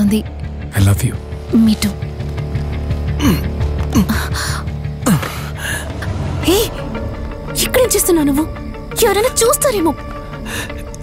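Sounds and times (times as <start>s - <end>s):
tense film music: 0.0s - 11.0s
low sustained drone: 4.8s - 10.8s.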